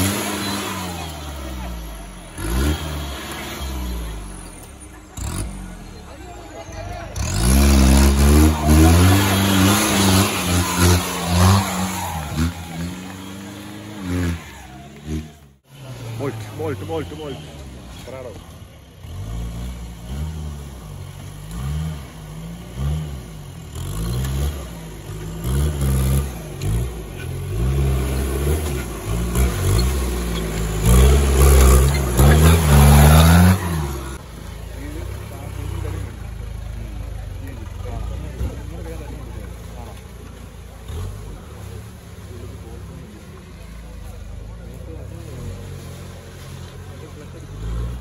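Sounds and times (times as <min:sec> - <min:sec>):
off-road engine revving: 0:00.0 - 0:48.0.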